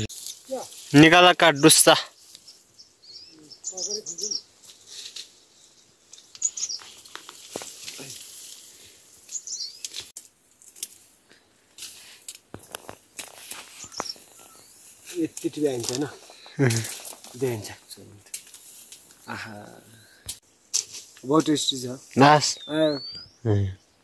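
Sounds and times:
bamboo stalks rustling and knocking: 0.0 - 1.1, 4.6 - 19.3, 20.2 - 21.8
bird chirping: 0.0 - 7.5, 9.2 - 10.1, 13.6 - 18.4, 21.4 - 24.0
bamboo snapping and cracking: 9.8 - 11.1, 11.7 - 14.2, 15.3 - 16.1.

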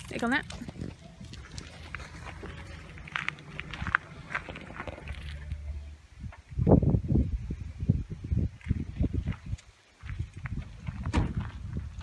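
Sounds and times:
footsteps on gravel: 0.0 - 5.8, 8.6 - 12.0.

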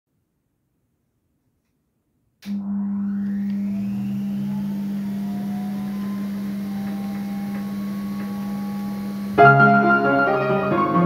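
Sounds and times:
faint rising whine: 2.4 - 9.7
pianola mechanism humming: 2.4 - 9.8.

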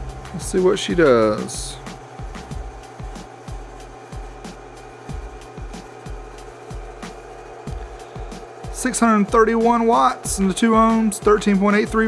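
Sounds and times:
low bass pulses dropping in pitch: 0.0 - 6.9
steady hum: 0.0 - 12.0.

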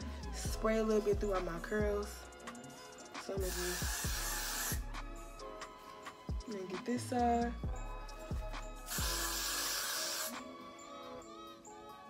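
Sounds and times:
background music: 0.0 - 12.0
aerosol hairspray hissing: 3.4 - 4.9, 8.9 - 10.4.

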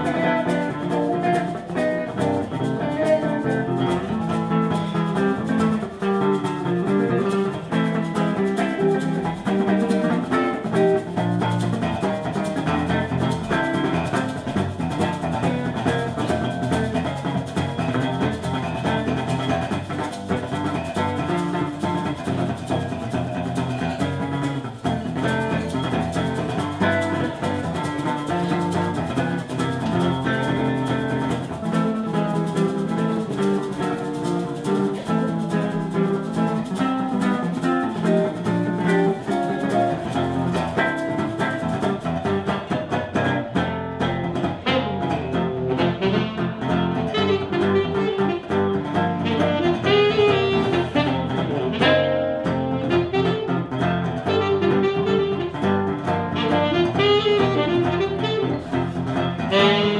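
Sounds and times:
tenor saxophone: 0.0 - 22.9, 44.4 - 59.9
jazz guitar accompaniment: 0.0 - 59.9.

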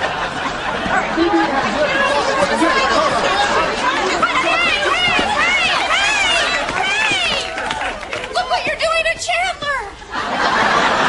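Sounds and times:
people shouting: 2.0 - 8.7.

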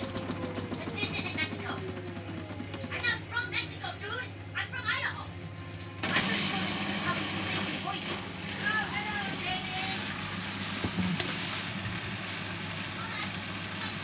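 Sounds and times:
washing machine spinning: 0.0 - 14.0.

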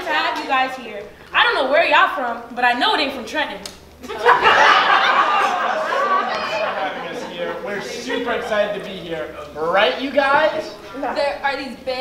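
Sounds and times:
people chattering: 4.0 - 12.0.

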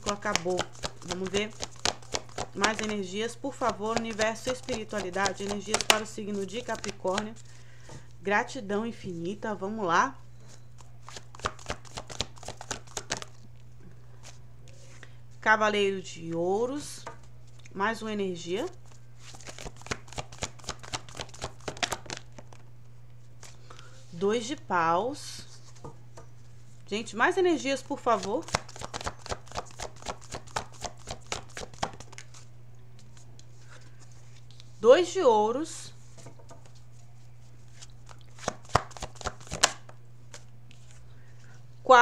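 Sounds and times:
cards shuffled by hand: 0.0 - 7.4, 10.8 - 13.5, 18.8 - 22.6, 28.0 - 34.7, 36.0 - 41.0.

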